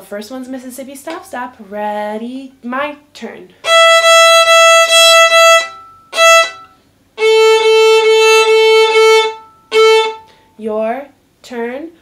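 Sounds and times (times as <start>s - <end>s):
violin bowing open strings: 3.6s - 10.3s.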